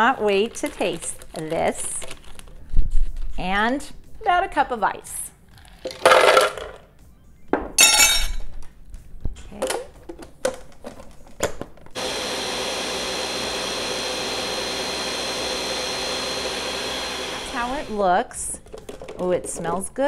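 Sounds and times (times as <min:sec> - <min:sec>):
blender whining: 0:12.0 - 0:18.0.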